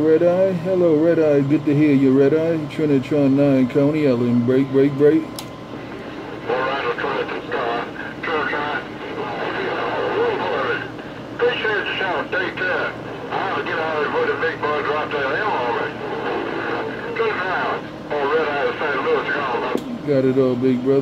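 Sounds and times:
radio hiss: 4.2s - 21.0s
voice over cb radio: 6.4s - 19.8s.

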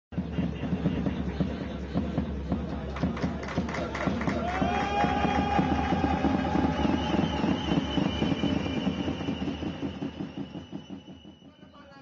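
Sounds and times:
music with quick steady beat: 0.1s - 12.0s.

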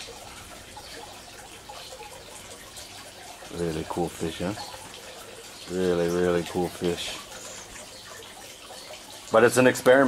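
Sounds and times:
hose water running into tank: 0.0s - 10.0s.

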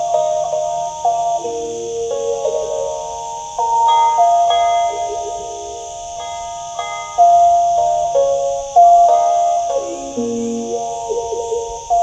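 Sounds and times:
plucked stick zither melody: 0.0s - 12.0s.

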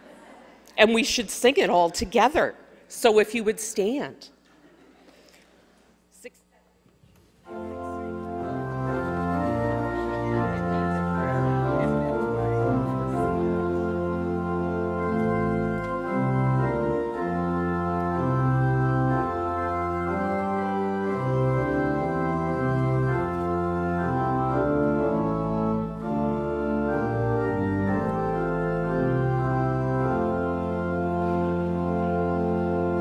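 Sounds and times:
church organ playing hymn: 7.4s - 33.0s.

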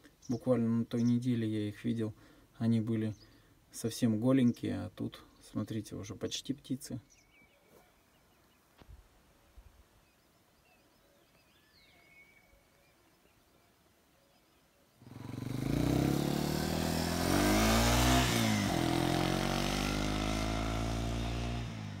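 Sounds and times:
faint bird chirps: 6.9s - 15.2s
vehicle engine passing: 15.0s - 22.0s.

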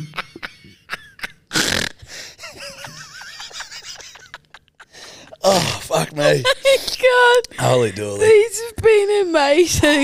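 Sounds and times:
people laughing hard: 2.3s - 6.8s.

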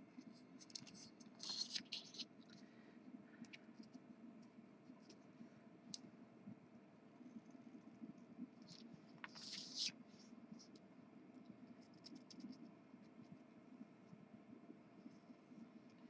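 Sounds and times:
marker scratching on fabric: 0.3s - 2.3s.

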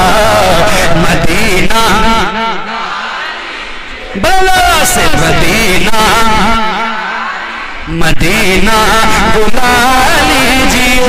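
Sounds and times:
man singing into a microphone: 0.0s - 2.8s, 4.1s - 11.0s.

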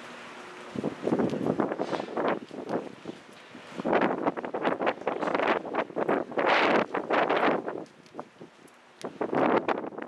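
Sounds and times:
wind buffeting microphone: 0.6s - 10.0s.

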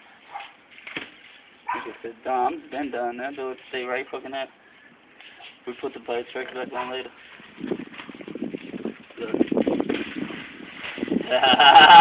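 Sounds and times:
running footsteps on wet grass: 6.7s - 12.0s.

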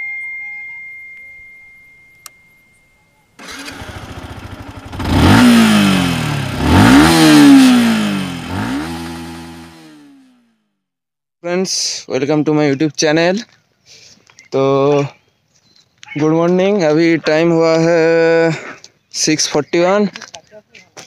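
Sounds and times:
motorcycle engine revving: 3.4s - 10.6s.

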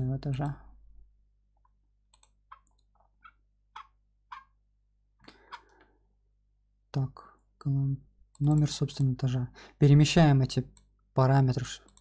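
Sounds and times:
computer mouse clicking: 2.1s - 4.5s, 8.3s - 9.2s.

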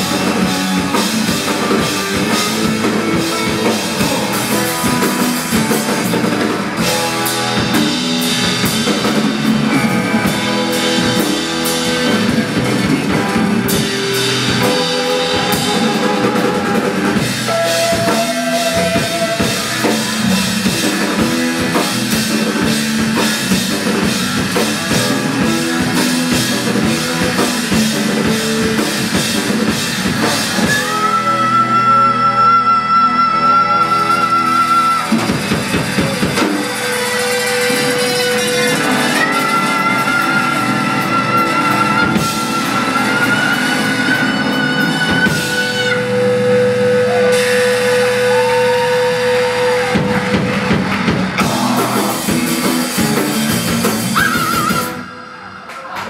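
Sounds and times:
drum kit beat: 0.0s - 31.2s, 34.8s - 56.0s
electric bass: 0.0s - 55.4s.

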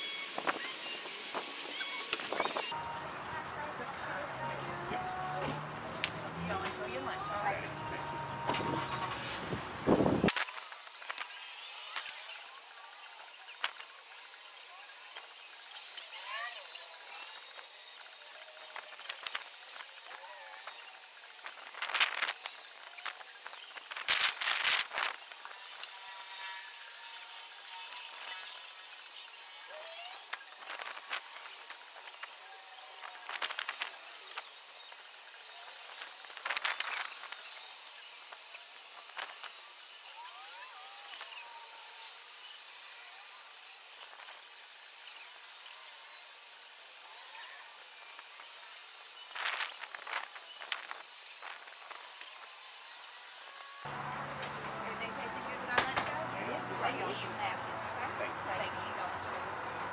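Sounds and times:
steady high hiss: 6.3s - 53.9s.

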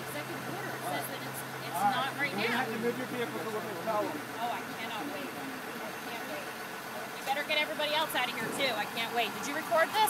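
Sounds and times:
faint voices: 0.0s - 10.0s
vehicle engine idling: 0.0s - 10.0s.

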